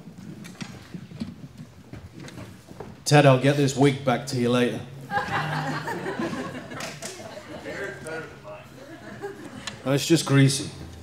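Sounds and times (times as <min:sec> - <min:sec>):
faint audience murmur: 0:04.8 - 0:11.0.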